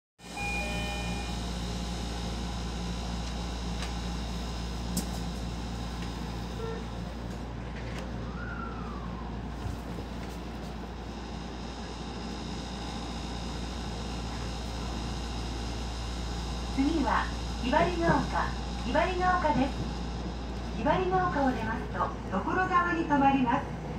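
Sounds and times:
faint hum: 0:00.2 - 0:23.9
train running rumble: 0:00.2 - 0:23.9.

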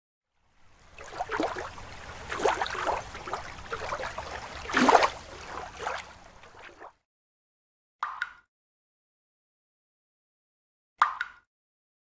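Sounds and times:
water splashing and trickling: 0:00.4 - 0:07.0.

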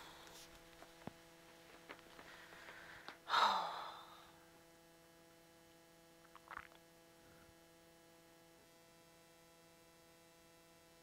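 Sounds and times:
person sighing: 0:02.3 - 0:04.4.

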